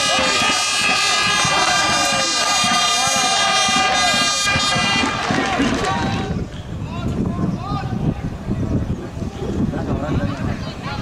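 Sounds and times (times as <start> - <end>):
air horn blast: 0.0 - 6.4
fans shouting: 0.0 - 6.5.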